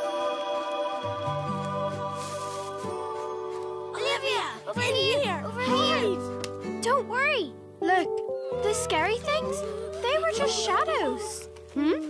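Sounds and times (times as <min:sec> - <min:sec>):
background music chords: 0:00.0 - 0:11.9
high-pitched cartoon voices: 0:08.5 - 0:12.0.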